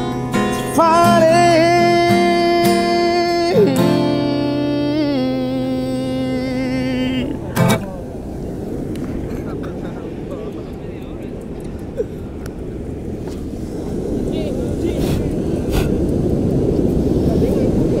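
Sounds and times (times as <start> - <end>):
wind and surf rumble: 0.0 - 18.0
people's voices: 0.4 - 18.0.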